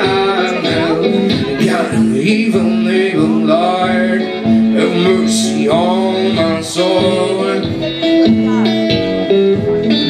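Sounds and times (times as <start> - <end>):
blues electric guitar: 0.0 - 10.0
man singing: 0.0 - 10.0.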